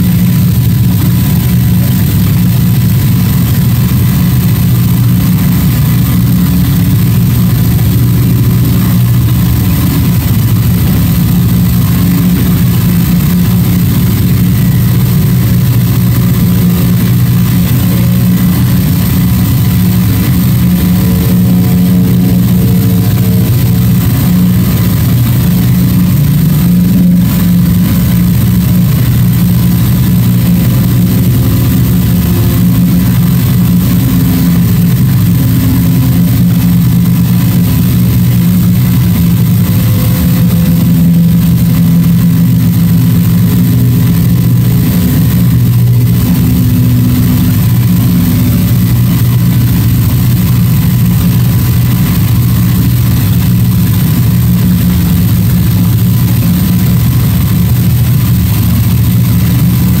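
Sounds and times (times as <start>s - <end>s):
faint higher tones: 0.0s - 53.2s
thin steady high tone: 0.0s - 57.9s
loud low drone: 0.0s - 60.0s.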